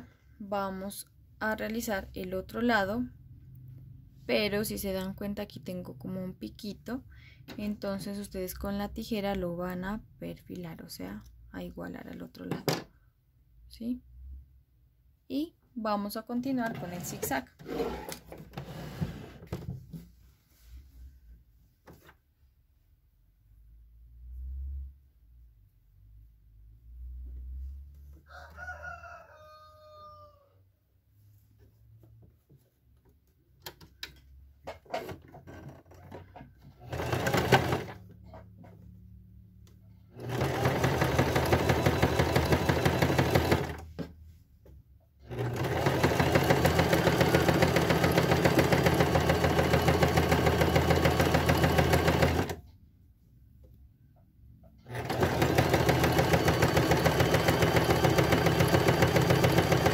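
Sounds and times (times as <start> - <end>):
rooster crowing: 28.2 - 30.6
electric sewing machine running: 36.8 - 38.0, 40.2 - 43.8, 45.3 - 52.6, 54.9 - 59.9.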